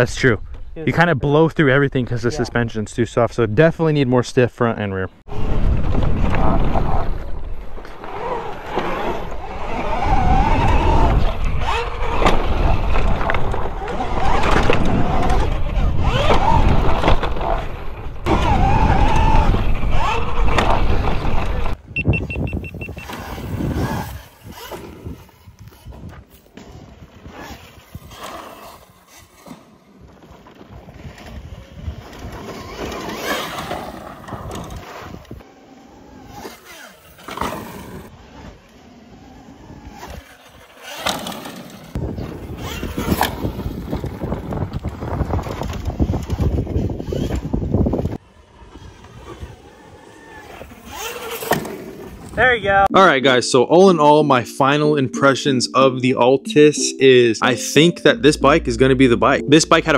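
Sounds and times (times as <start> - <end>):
wind on microphone: 5.3 - 28.2, 42.0 - 48.2
tyres on dirt: 5.3 - 52.5.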